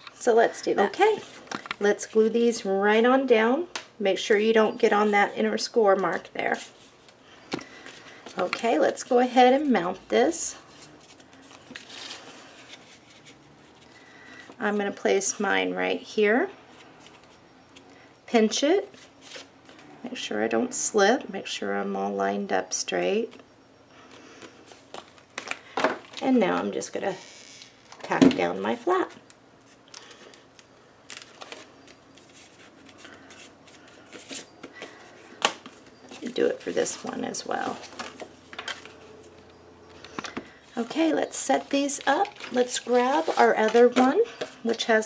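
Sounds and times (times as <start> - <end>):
paper rustling and rubbing: 10.6 - 14.0, 31.1 - 35.0, 40.8 - 44.6
paper and cardstock rustling: 40.1 - 44.9.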